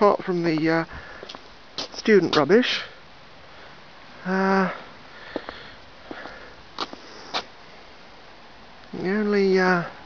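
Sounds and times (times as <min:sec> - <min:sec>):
low background noise: 0:00.0 - 0:10.0
person sniffing: 0:05.2 - 0:07.5.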